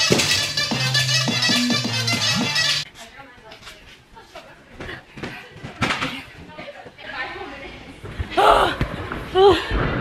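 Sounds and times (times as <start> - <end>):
background music with steady beat: 0.0 - 2.9
faint voices in gym hall: 2.8 - 9.7.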